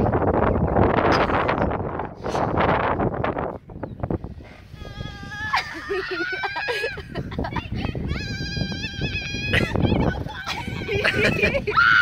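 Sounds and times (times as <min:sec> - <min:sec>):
person laughing bleat-like: 0:05.0 - 0:08.5, 0:09.4 - 0:12.0.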